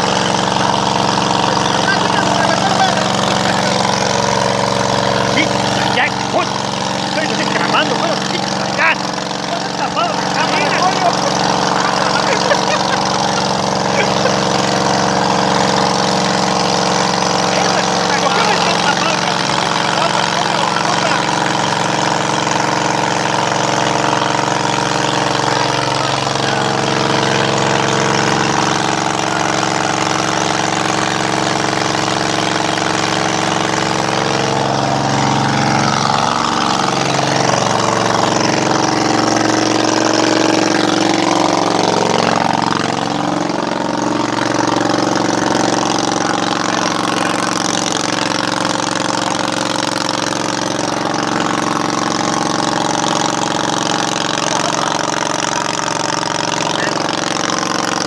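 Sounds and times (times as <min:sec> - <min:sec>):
truck engine running: 0:00.0 - 0:58.0.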